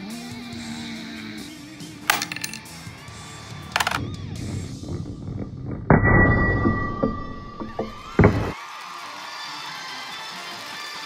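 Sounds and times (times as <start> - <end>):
coins clinking on wooden table: 2.1 - 2.7, 3.7 - 4.0.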